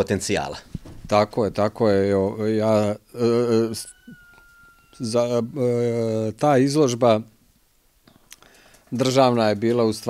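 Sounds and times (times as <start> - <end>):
man speaking: 0.0 - 4.2, 5.0 - 7.3, 8.9 - 10.0
man's drawn-out hesitation sound: 1.1 - 4.2.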